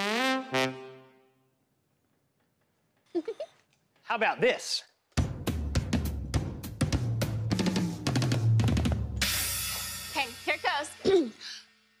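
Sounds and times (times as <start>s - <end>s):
drum kit playing: 5.1s - 11.3s.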